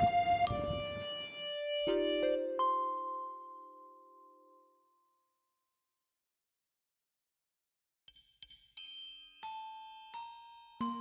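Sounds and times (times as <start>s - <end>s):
slow bell-like melody: 0.4s - 5.2s, 8.8s - 11.0s.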